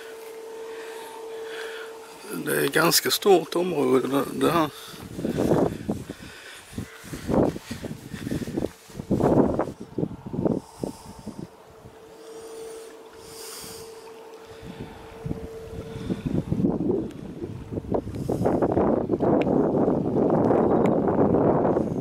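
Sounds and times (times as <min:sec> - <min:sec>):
faint steady hum: 0:00.0 - 0:22.0
wind buffeting microphone: 0:04.3 - 0:12.5, 0:13.1 - 0:22.0.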